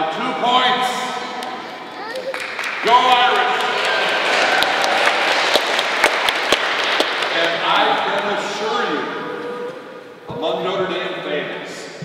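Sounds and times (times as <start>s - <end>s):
crowd applause: 2.0s - 9.0s.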